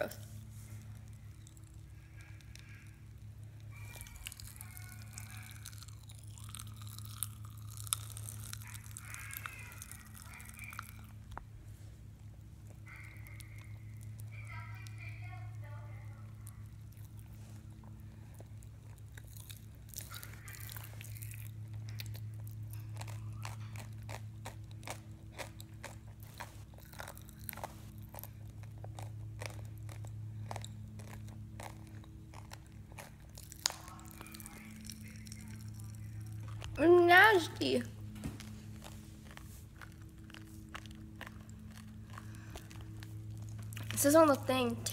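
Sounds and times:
popping candy crackling while chewed: 0:00.0 - 0:44.9
steady low hum: 0:00.0 - 0:44.9.

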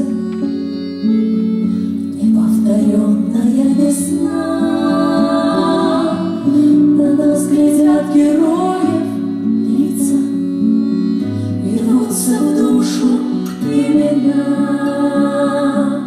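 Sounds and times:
instrumental backing: 0:00.0 - 0:16.0
female vocal trio singing: 0:02.2 - 0:10.4, 0:11.6 - 0:16.0.

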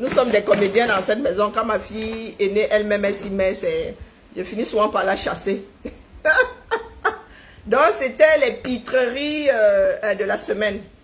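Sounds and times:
woman speaking: 0:00.0 - 0:06.8, 0:07.6 - 0:11.0
woman chuckling: 0:05.8 - 0:07.4.

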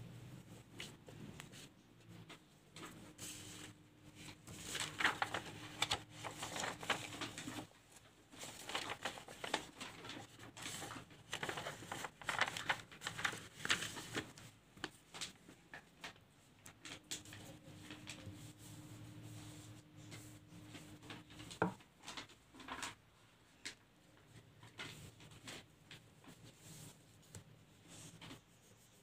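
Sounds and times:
paper rustling and crinkling: 0:00.5 - 0:23.0, 0:23.6 - 0:29.0.

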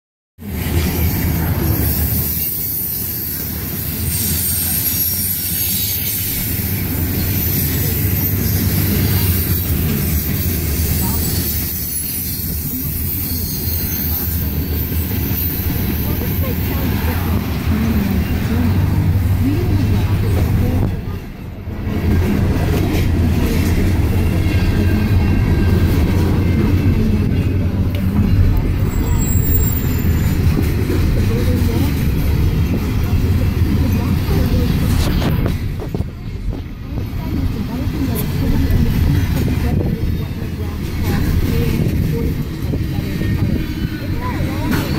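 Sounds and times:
freight train passing: 0:00.4 - 0:44.9.

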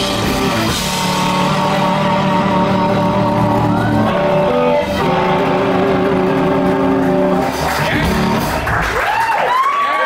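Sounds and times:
electric guitar ringing notes: 0:00.0 - 0:08.7
electric bass: 0:00.0 - 0:09.0
drum kit: 0:00.0 - 0:09.3.

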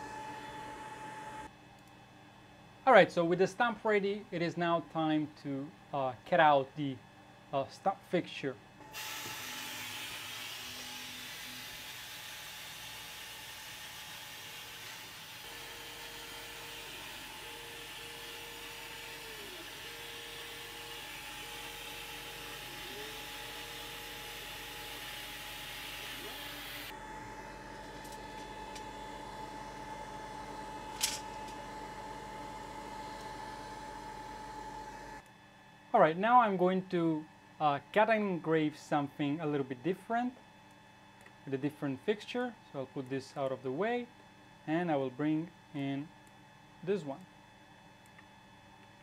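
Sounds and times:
stepper motor whine: 0:00.0 - 0:01.5, 0:08.8 - 0:35.2.

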